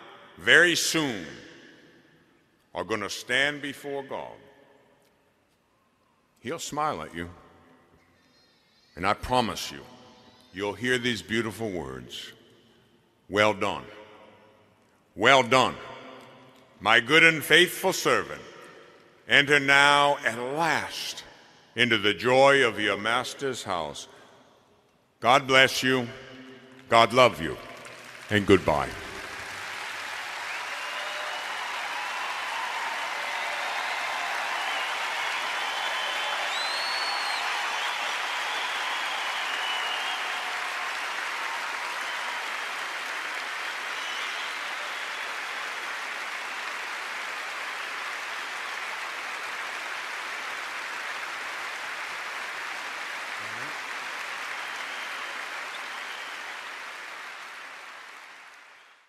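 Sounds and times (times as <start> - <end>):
audience applauding: 26.7 - 59.0.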